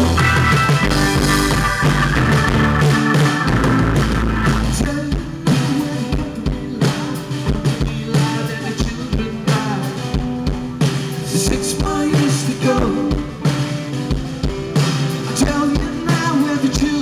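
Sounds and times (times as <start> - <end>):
bass guitar: 0.0 - 17.0
drum kit beat: 0.0 - 17.0
electric guitars: 0.0 - 17.0.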